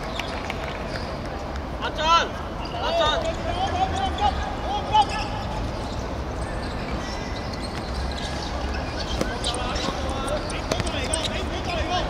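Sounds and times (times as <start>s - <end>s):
players shouting: 1.8s - 5.7s.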